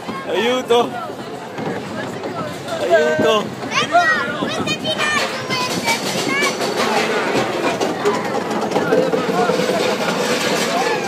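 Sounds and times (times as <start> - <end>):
roller coaster rattling on track: 0.0 - 11.0.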